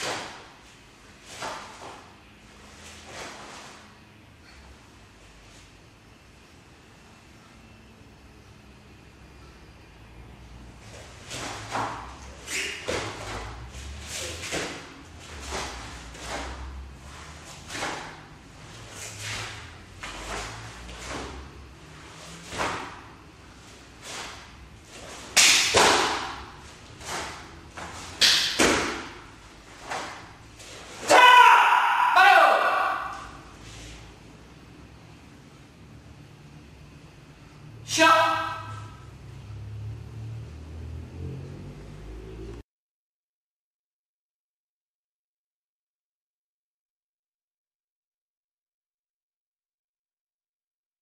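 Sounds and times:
person shouting: 31.0s - 33.4s, 37.9s - 38.9s.

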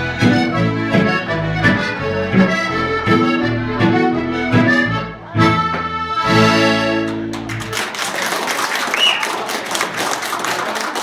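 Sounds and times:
accordions holding a chord: 0.0s - 7.4s
audience applause: 7.1s - 11.0s
short high whistle: 8.9s - 9.3s.

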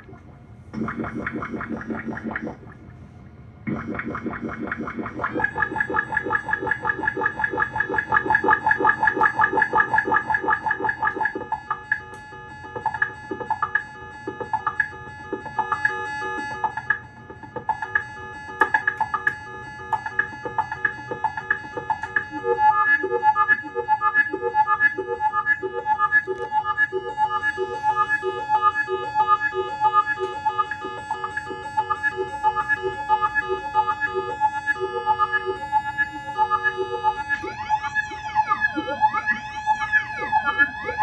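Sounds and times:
buzzy pulsing synth sound: 0.0s - 2.9s, 3.7s - 41.0s
rhythmic short electronic pulses: 0.0s - 3.0s, 3.6s - 41.0s
pitched drone with fast flutter: 3.7s - 11.9s, 12.7s - 41.0s.

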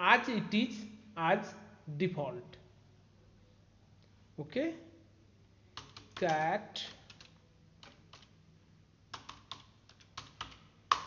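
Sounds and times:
computer keyboard typing: 5.7s - 8.4s, 9.1s - 11.0s.

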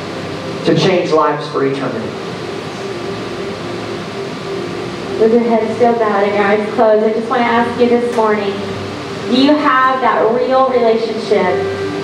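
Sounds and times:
room hiss and hum: 0.0s - 12.0s.

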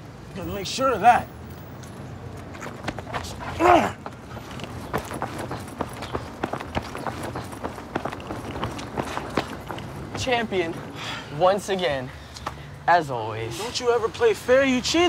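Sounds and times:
sneakers running on concrete: 2.5s - 10.9s.

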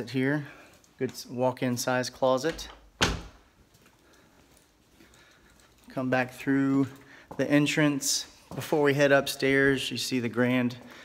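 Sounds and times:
interior door shutting thud: 2.5s - 3.5s.

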